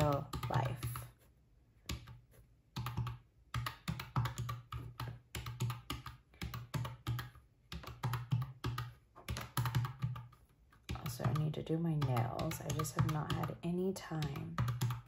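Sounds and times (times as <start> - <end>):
calculator keys clicking: 0.0 - 1.1, 2.8 - 15.0.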